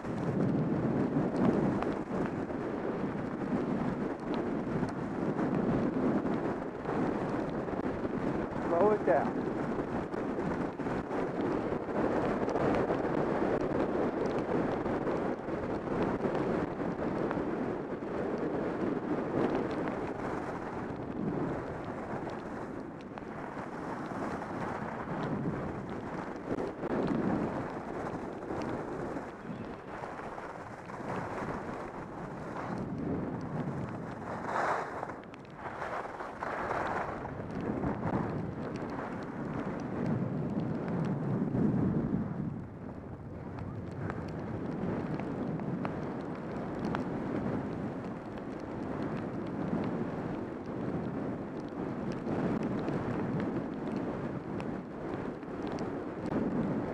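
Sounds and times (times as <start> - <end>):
wind buffeting microphone: 0.0 - 56.9
skis scraping snow: 18.6 - 22.6, 23.4 - 38.2.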